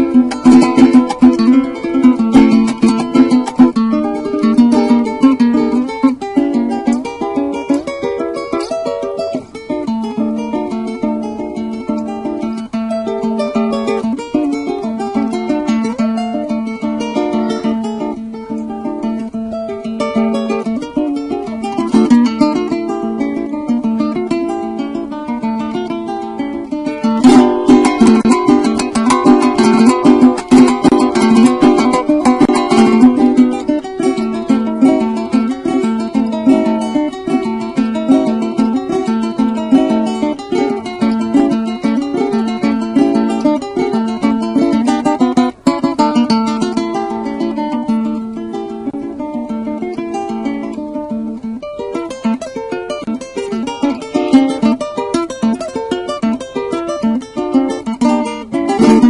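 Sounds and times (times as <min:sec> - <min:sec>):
small nylon-string guitar playing: 0:00.0 - 0:59.0.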